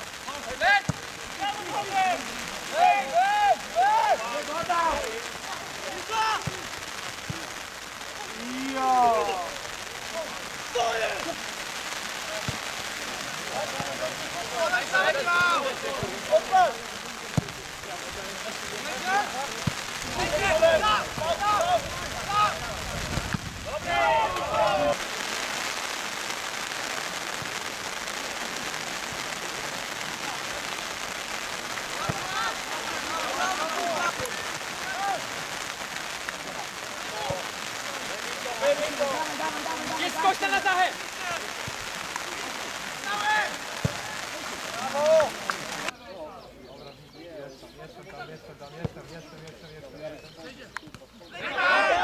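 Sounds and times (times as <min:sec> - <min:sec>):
rain hissing: 0:00.0 - 0:46.0
players shouting: 0:00.2 - 0:25.6, 0:27.0 - 0:46.0, 0:51.3 - 0:52.0.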